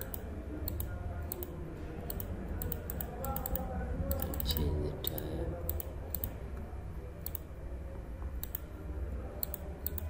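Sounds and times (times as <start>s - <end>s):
computer mouse clicking: 0.0s - 6.4s, 7.2s - 7.5s, 8.4s - 8.7s, 9.4s - 10.0s.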